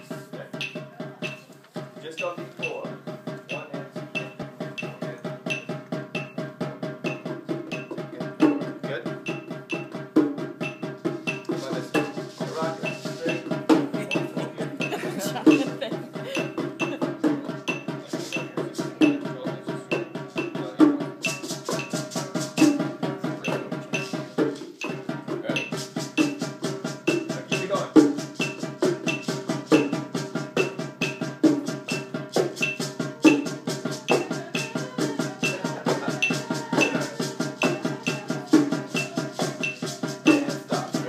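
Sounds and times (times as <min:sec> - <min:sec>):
conga drums: 0:00.0 - 0:41.0
maraca shaking: 0:10.6 - 0:19.2, 0:19.9 - 0:30.0, 0:30.6 - 0:41.0.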